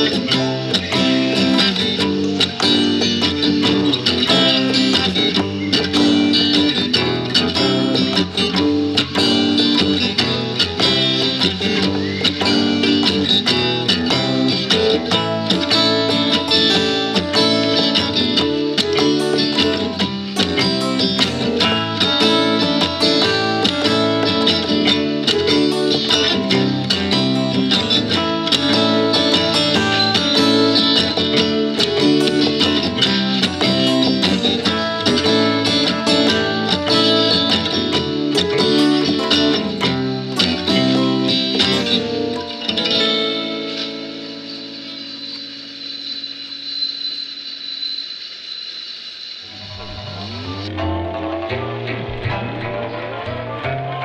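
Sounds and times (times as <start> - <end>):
electric-toned guitar playing surf rock: 0.0 - 48.5, 49.4 - 54.0
programmed drum track: 49.5 - 54.0.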